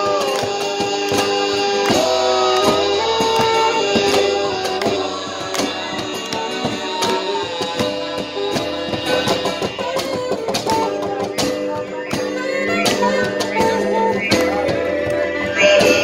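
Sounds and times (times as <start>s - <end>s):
acoustic guitar: 0.0s - 16.0s
saxophone melody: 0.0s - 16.0s
slapped cajon beats: 0.0s - 16.0s.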